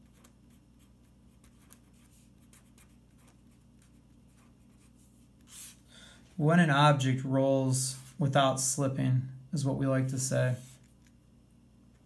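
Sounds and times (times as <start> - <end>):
pen scratching on paper: 0.0 - 5.8
low room hum: 0.0 - 12.0.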